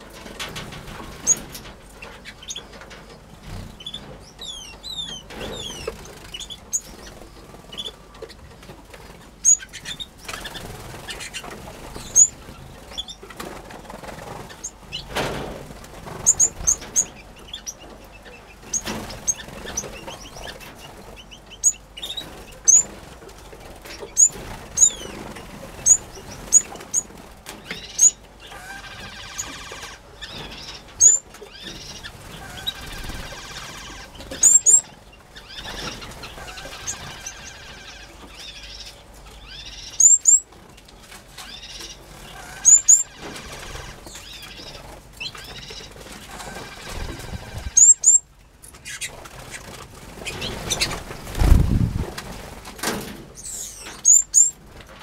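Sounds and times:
finch song: 0.0 - 15.2, 16.0 - 40.5, 41.3 - 52.0, 53.4 - 54.6
finches chirping: 9.4 - 13.2, 16.2 - 22.9, 23.9 - 40.5, 41.4 - 49.2, 53.4 - 54.6
bird wings fluttering: 32.1 - 34.4, 46.1 - 47.9, 49.1 - 53.2.

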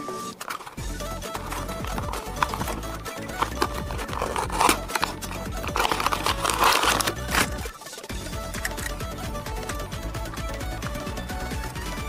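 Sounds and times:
background music: 0.0 - 12.0
plastic packaging crinkling: 0.3 - 7.8.

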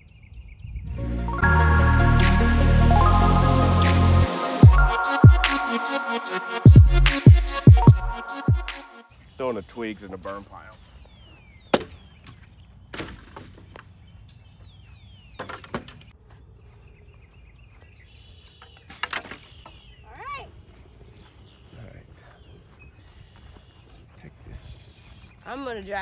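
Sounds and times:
branches landing with cracking knocks: 11.6 - 13.9, 15.4 - 16.1, 18.7 - 19.8.

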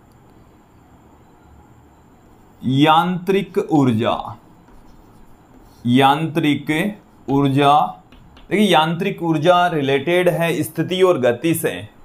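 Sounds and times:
man talking: 2.6 - 4.4, 5.8 - 12.0
chalk writing on chalkboard: 3.4 - 8.8.

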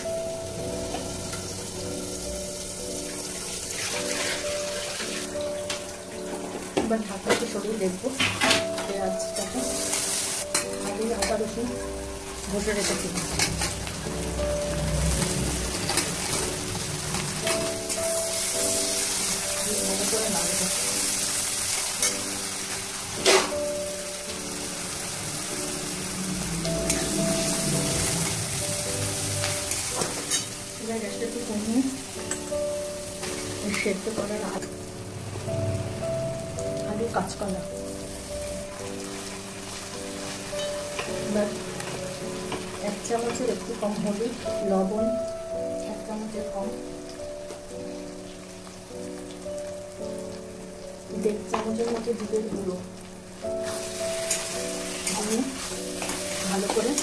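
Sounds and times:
background music of held notes: 0.0 - 57.0
onions sizzling in hot oil: 0.0 - 57.0.

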